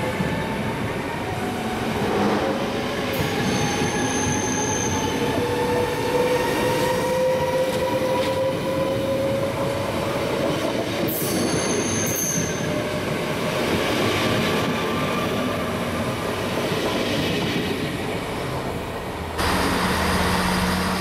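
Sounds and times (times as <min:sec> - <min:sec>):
electric train rumble and whine: 0:00.0 - 0:21.0
high-pitched train squeals: 0:03.1 - 0:09.8, 0:11.1 - 0:13.0.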